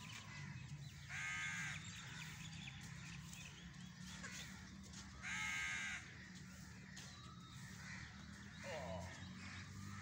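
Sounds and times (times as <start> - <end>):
small birds chirping: 0.0 - 10.0
crow cawing: 1.1 - 2.3, 5.2 - 6.1.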